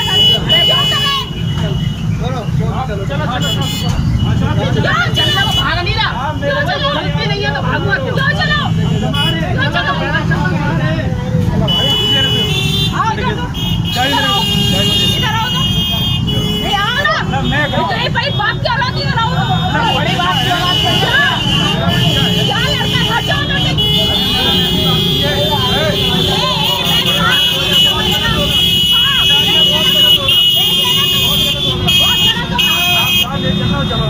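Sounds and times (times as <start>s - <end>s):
motorcycle and vehicle engines idling: 0.0s - 34.0s.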